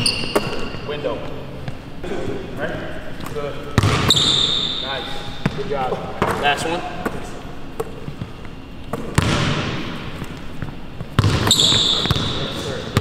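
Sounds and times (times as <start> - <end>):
shoe squeak: 0.0 - 1.2, 4.0 - 5.6, 11.2 - 13.0
basketball bouncing on wood floor: 3.8 - 4.4, 8.9 - 12.4.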